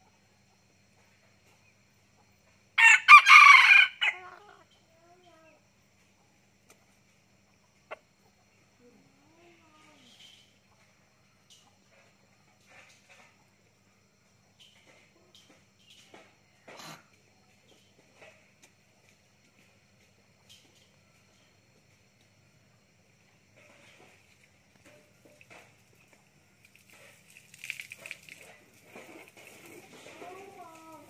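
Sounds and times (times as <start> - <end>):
rooster crowing: 2.8 - 4.6.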